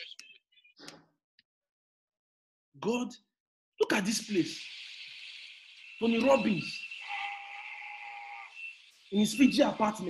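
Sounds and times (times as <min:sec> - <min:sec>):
held steady tones: 0:04.2 - 0:10.0.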